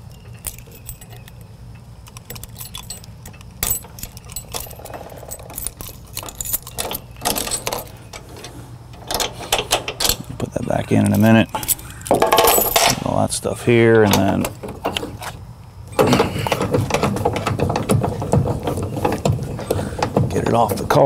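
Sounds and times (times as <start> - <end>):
metal clinking and rattling: 0.0 - 13.1
steady low hum: 0.0 - 21.0.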